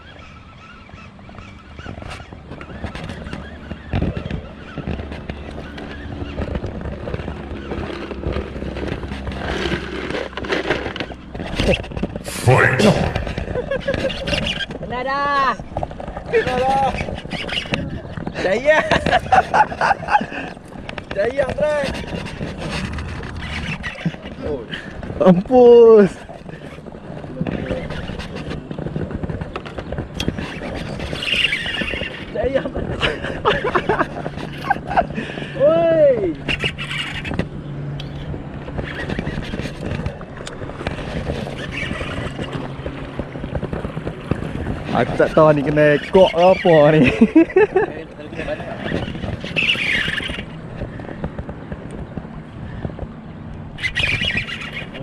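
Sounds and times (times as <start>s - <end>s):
boat motor humming: 0.0s - 55.0s
person speaking: 12.2s - 13.4s
fishing reel drag buzzing: 36.4s - 37.4s, 45.1s - 47.3s, 48.4s - 50.5s, 53.8s - 55.0s.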